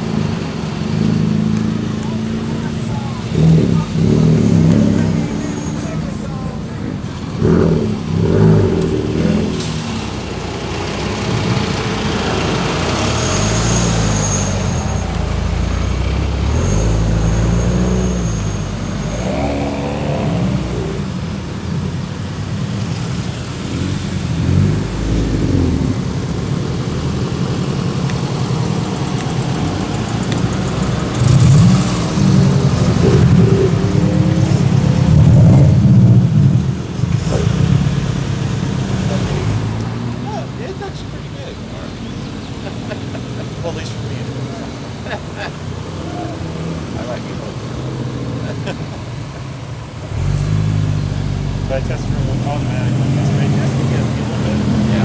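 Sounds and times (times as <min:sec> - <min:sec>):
cars driving past: 0:00.0 - 0:55.0.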